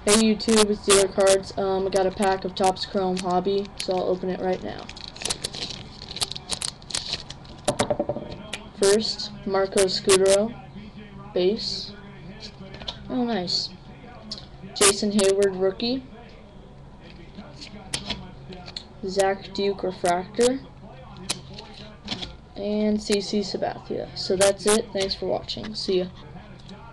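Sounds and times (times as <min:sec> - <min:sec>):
trading cards being shuffled: 0:03.1 - 0:08.6
foil wrapper crinkling: 0:04.7 - 0:07.7
card stock clicks and snaps: 0:04.8 - 0:07.6.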